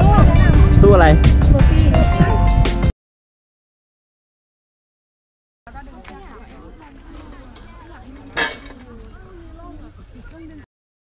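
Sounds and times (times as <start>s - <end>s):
faint voices: 5.7s - 10.7s.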